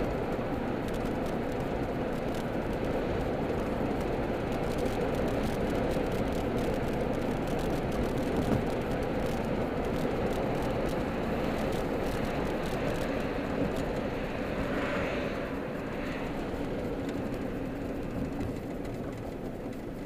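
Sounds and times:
car engine and tyre noise: 0:00.0 - 0:20.0.

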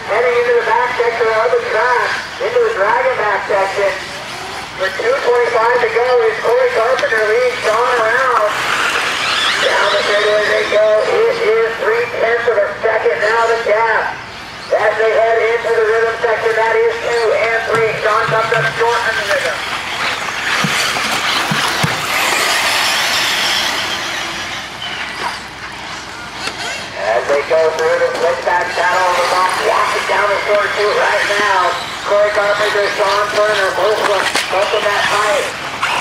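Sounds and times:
rc car motors hissing: 0:08.5 - 0:11.0, 0:19.7 - 0:26.8, 0:28.9 - 0:36.0.

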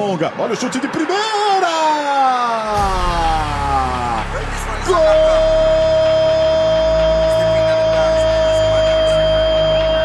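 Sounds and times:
commentator shouting: 0:01.0 - 0:08.7
bass-house music: 0:02.8 - 0:10.0.

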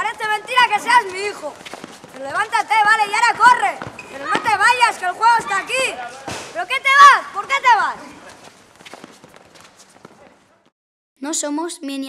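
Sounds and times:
soft footsteps on concrete: 0:00.0 - 0:10.7.

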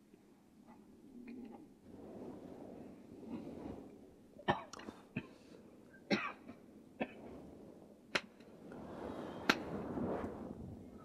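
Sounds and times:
person coughing: 0:06.1 - 0:07.2.

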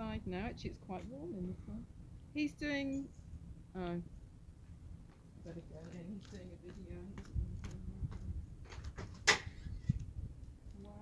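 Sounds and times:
wind rumble on microphone: 0:06.4 - 0:11.0.

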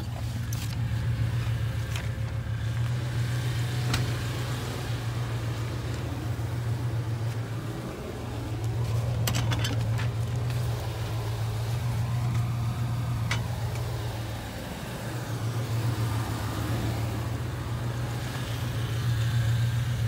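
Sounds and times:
vehicle engine idling: 0:00.0 - 0:20.0.

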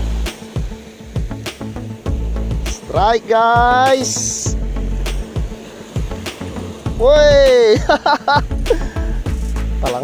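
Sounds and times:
background music with beat: 0:00.0 - 0:10.0
short high-pitched hiss: 0:00.0 - 0:10.0.

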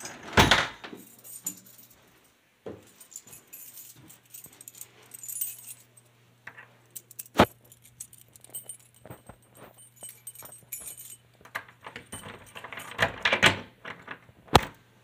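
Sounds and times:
metal doorknob jingling and rattling: 0:09.8 - 0:14.2.

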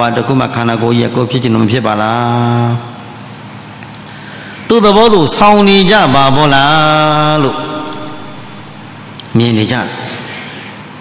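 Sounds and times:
man chanting: 0:04.7 - 0:10.3.

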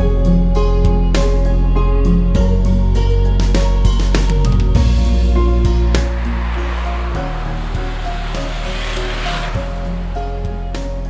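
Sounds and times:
hiss-like noise wash: 0:05.4 - 0:11.0.

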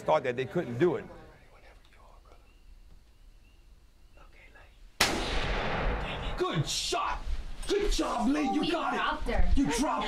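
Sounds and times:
faint whispering: 0:01.2 - 0:02.6, 0:04.1 - 0:04.8
gunshot with ringing tail: 0:05.0 - 0:06.6.

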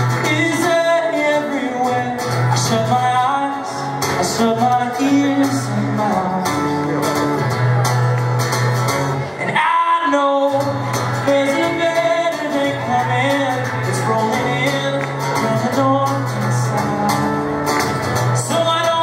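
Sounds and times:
man singing into a microphone: 0:00.0 - 0:07.7, 0:09.3 - 0:19.0
strummed acoustic guitar: 0:00.0 - 0:19.0.

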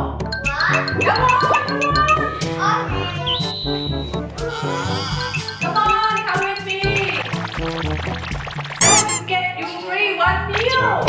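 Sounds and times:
background music: 0:00.0 - 0:09.6
child talking: 0:00.5 - 0:01.3, 0:02.1 - 0:03.3
cartoon sweep effect: 0:07.0 - 0:09.3.

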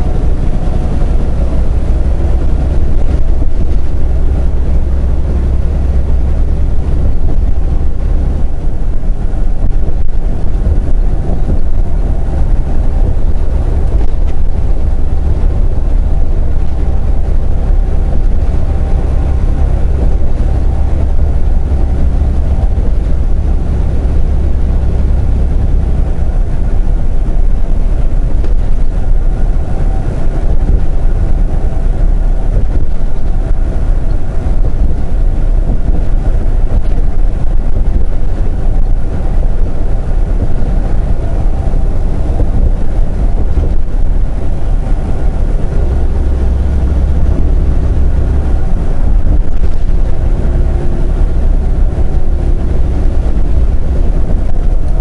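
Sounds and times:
truck engine drone: 0:00.0 - 0:55.0
tyre and road noise: 0:00.0 - 0:55.0.

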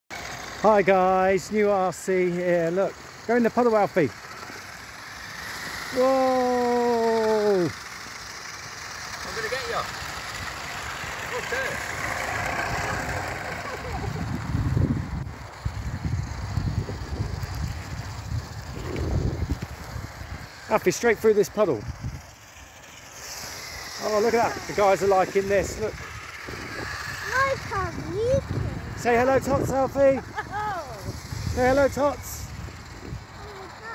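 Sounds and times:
tyres hissing on wet tarmac: 0:00.1 - 0:14.3, 0:15.4 - 0:28.2
toy car electric motor whir: 0:00.1 - 0:33.9
wind rumble on microphone: 0:12.7 - 0:20.6, 0:25.4 - 0:33.4.

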